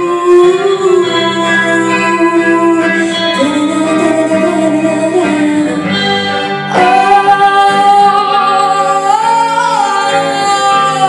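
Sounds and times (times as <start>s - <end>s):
guitar accompaniment: 0.0s - 11.0s.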